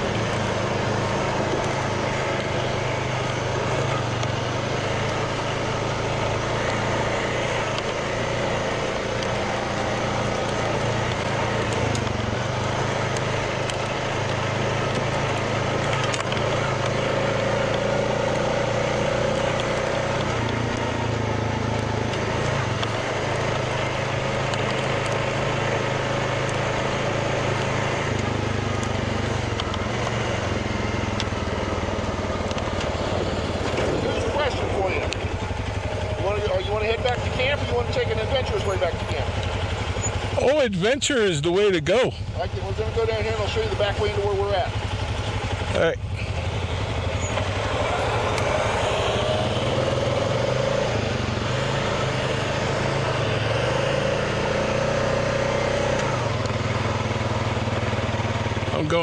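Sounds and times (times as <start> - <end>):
atv engine running: 0.0 - 59.0
track noise: 0.0 - 59.0.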